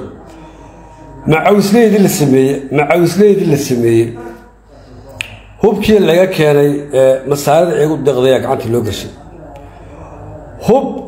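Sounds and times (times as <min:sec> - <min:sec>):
man speaking: 0:01.2 - 0:05.0, 0:05.6 - 0:09.3, 0:10.5 - 0:11.0.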